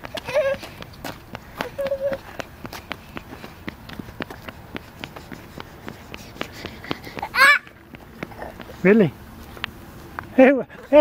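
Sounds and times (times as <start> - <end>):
quick footsteps on concrete: 0.0 - 11.0.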